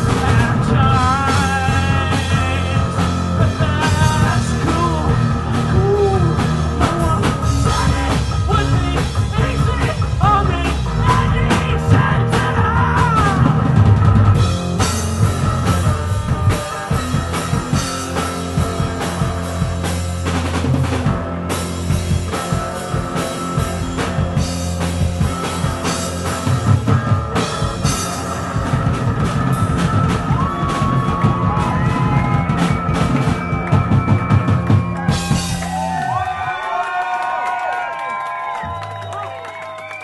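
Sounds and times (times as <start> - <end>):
rock band playing: 0.0 - 36.7.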